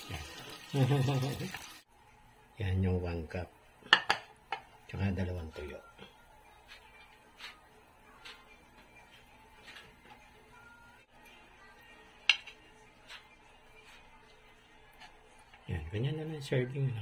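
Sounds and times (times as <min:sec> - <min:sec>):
hot oil crackling: 0:00.0 - 0:01.9.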